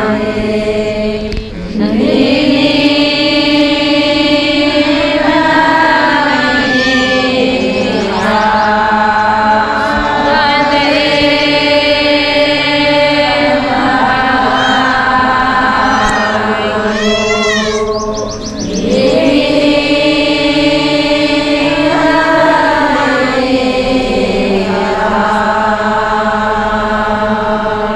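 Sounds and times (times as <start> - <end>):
women chanting in unison: 0.0 - 27.9.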